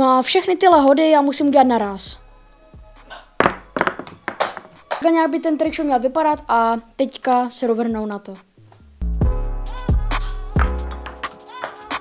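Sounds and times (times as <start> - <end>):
quiet background music: 0.0 - 12.0
ping-pong balls bouncing on table: 3.4 - 5.1, 10.6 - 12.0.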